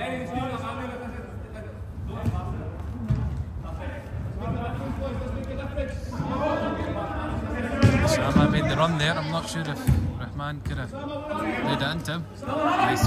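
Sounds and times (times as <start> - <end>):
players calling out in echoing hall: 0.0 - 13.0.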